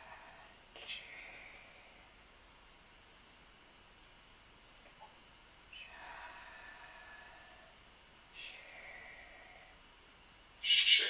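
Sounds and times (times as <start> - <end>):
faint room noise: 0.0 - 11.0
voice chanting hissing syllable: 10.6 - 11.0.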